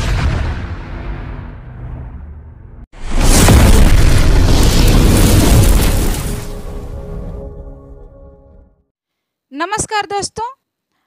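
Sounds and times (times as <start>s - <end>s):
cinematic boom: 0.0s - 7.6s.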